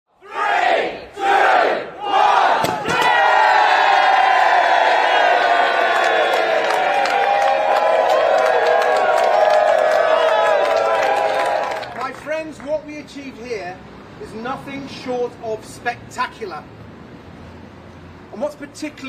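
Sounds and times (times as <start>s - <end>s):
crowd chanting a countdown: 0.2s - 3.5s
crowd cheering and whooping: 2.9s - 12.0s.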